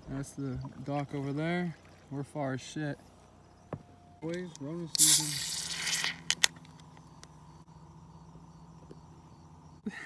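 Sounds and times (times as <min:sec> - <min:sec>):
can hissing: 0:04.9 - 0:06.5.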